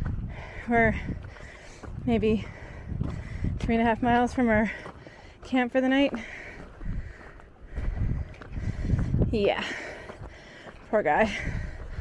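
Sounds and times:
wind rumble on microphone: 0.0 - 5.1, 6.1 - 12.0
footsteps on dirt trail: 0.0 - 12.0.

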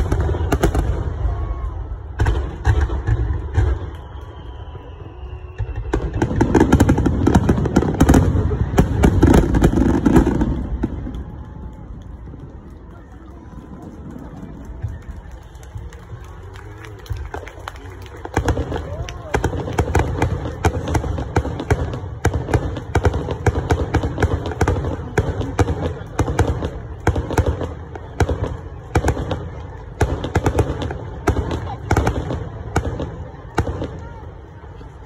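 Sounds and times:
fireworks crackling: 0.0 - 35.0.

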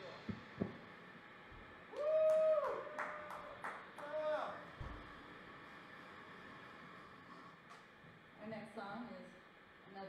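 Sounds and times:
person whooping: 1.9 - 4.6
hand claps: 2.2 - 4.1.

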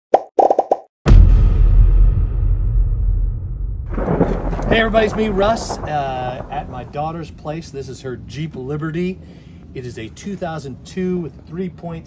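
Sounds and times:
deep booming hit rumbling: 1.1 - 7.5.

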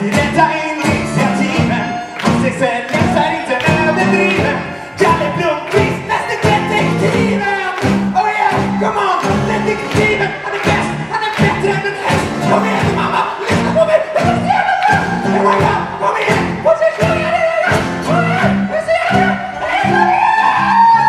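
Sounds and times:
live pop band: 0.0 - 21.0
man singing into microphone: 0.0 - 21.0.

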